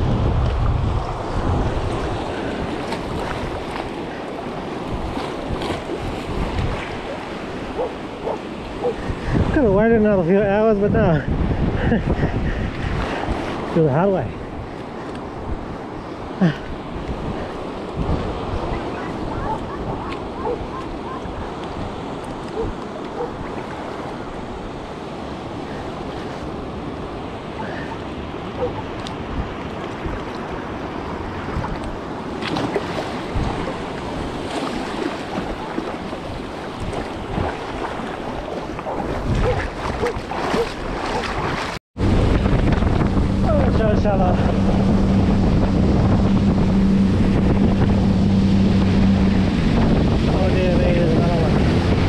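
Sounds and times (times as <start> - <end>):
wind buffeting microphone: 0.0 - 52.0
small waves lapping: 0.4 - 9.6, 11.8 - 52.0
water sloshing around wading legs: 1.7 - 9.0, 27.6 - 41.8.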